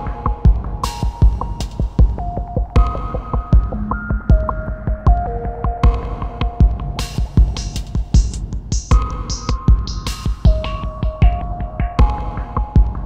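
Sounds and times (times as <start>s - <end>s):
crisp high percussion: 0.0s - 13.0s
deep kick drum pulses: 0.0s - 13.0s
downtempo electronic music: 0.0s - 13.0s.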